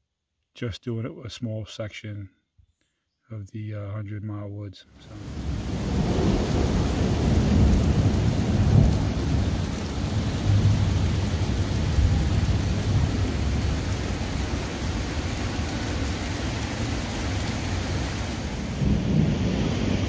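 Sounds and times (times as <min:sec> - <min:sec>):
heavy rain pouring: 0:05.0 - 0:20.0
rolling thunder rumble: 0:05.2 - 0:17.5, 0:18.2 - 0:20.0.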